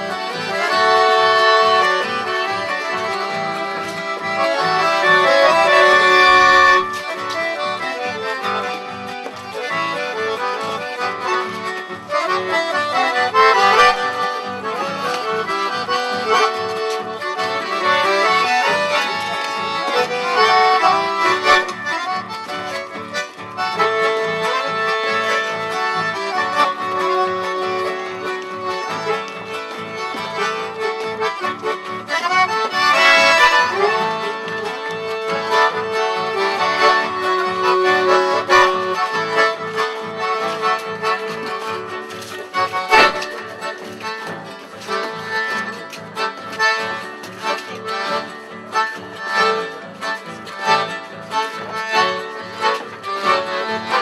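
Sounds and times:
accordion playing: 0:00.0 - 0:54.0
acoustic guitar rhythm: 0:00.0 - 0:54.0.

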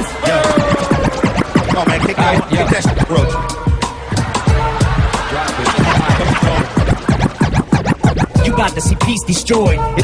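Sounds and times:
hip hop beat: 0:00.0 - 0:10.0
turntable scratching: 0:00.0 - 0:10.0.

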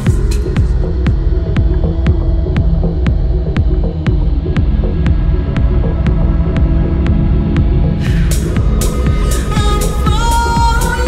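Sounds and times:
held synth bass: 0:00.0 - 0:11.0
kick drum: 0:00.0 - 0:11.0.

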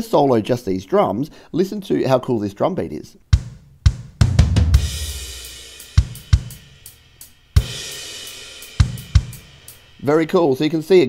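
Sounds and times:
kick drum strokes: 0:03.3 - 0:09.9
drum beat: 0:03.3 - 0:10.1
cymbal crashes: 0:04.7 - 0:10.1.

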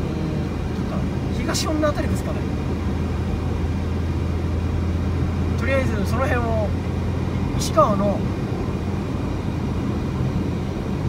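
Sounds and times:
car engine and tyre noise: 0:00.0 - 0:11.0.

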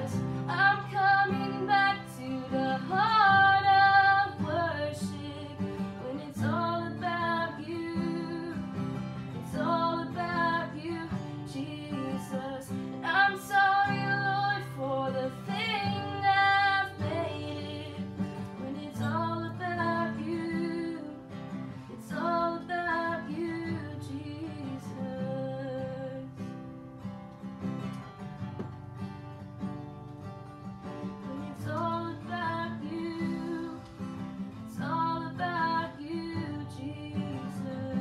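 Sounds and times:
woman singing: 0:00.0 - 0:26.6, 0:31.0 - 0:38.0
strummed acoustic guitar: 0:00.0 - 0:38.0.

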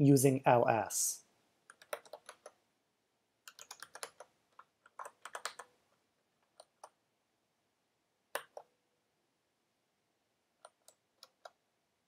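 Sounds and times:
keyboard keystrokes: 0:01.7 - 0:02.6, 0:03.5 - 0:05.8, 0:08.3 - 0:08.7, 0:10.6 - 0:11.6.

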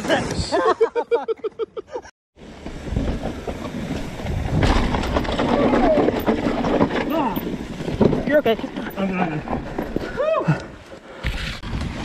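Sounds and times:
bike clattering and rattling: 0:02.4 - 0:10.2
bike tyre noise on dirt: 0:02.4 - 0:12.0.

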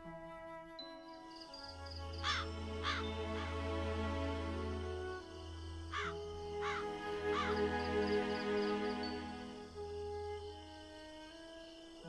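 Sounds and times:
slow background music: 0:00.0 - 0:12.0
crow cawing: 0:02.2 - 0:03.2, 0:05.9 - 0:07.7.

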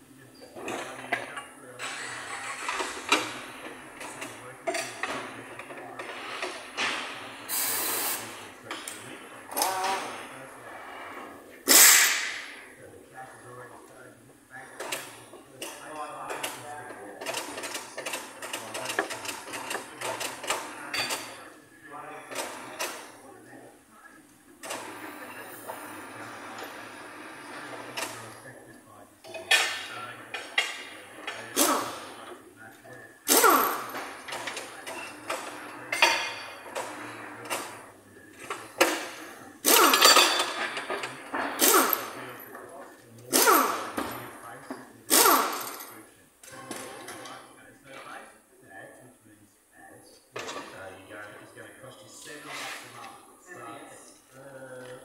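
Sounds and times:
background voices: 0:00.0 - 0:11.7, 0:12.5 - 0:55.0
tyre machine hissing bursts: 0:06.4 - 0:08.6, 0:11.6 - 0:12.6, 0:33.3 - 0:34.0, 0:39.6 - 0:40.1, 0:41.6 - 0:42.1, 0:43.3 - 0:44.0, 0:45.1 - 0:45.8.

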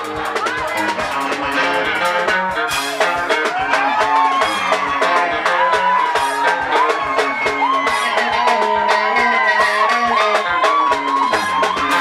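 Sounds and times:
electric guitar: 0:00.0 - 0:12.0
fast drum beat: 0:00.0 - 0:12.0.

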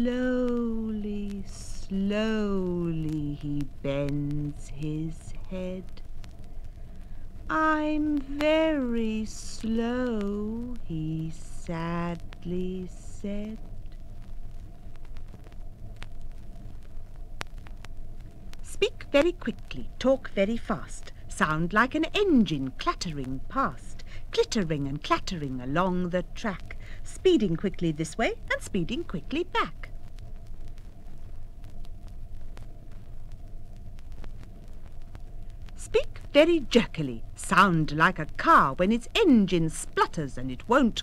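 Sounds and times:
faint hum: 0:00.0 - 0:41.0
vinyl record clicks: 0:00.0 - 0:41.0
vinyl record low rumble: 0:00.0 - 0:41.0
vinyl clicks and pops: 0:13.5 - 0:19.9, 0:29.8 - 0:36.3.

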